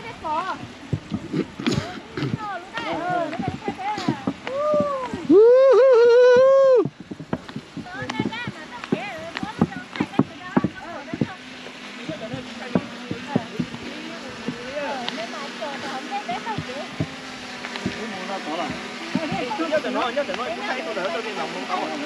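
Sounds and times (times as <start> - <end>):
footsteps on a path: 0.0 - 22.0
steady low hum: 0.0 - 22.0.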